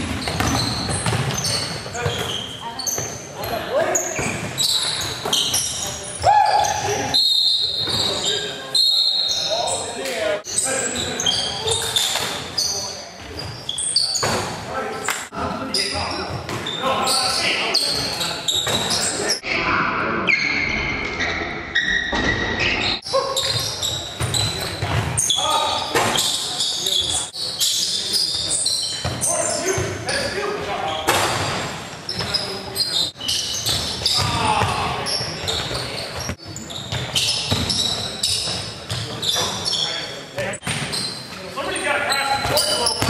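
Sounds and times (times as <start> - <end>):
short high squeaks: 35.1 - 40.2.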